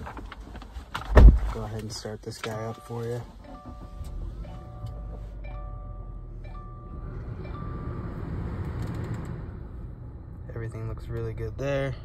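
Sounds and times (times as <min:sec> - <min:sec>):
car engine rumbling: 0:00.0 - 0:12.0
two-note warning chime: 0:02.8 - 0:08.2.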